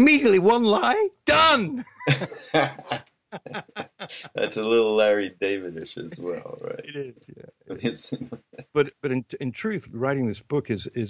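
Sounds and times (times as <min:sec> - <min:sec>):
men laughing: 0:01.8 - 0:04.8, 0:05.9 - 0:06.6.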